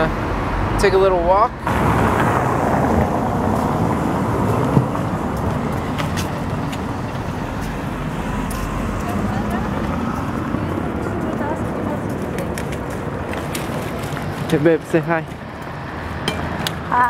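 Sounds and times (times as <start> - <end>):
traffic on wet roads: 0.0 - 17.0.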